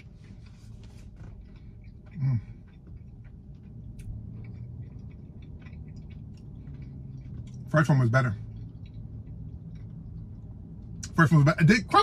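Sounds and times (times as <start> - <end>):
person chewing cookie: 0.0 - 11.3
low steady hum: 0.0 - 12.0.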